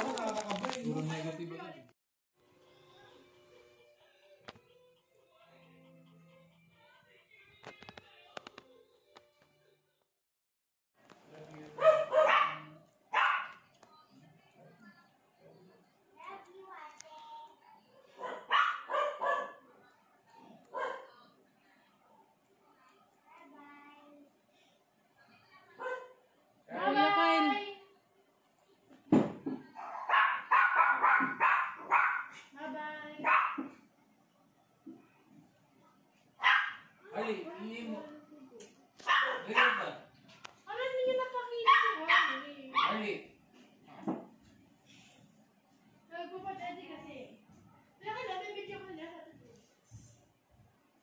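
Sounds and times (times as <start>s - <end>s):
small dog barking: 11.8s - 13.6s, 18.1s - 19.6s, 20.7s - 21.1s, 25.8s - 26.2s, 29.7s - 32.4s, 33.2s - 33.8s, 36.4s - 36.9s, 39.0s - 40.0s, 41.6s - 43.0s.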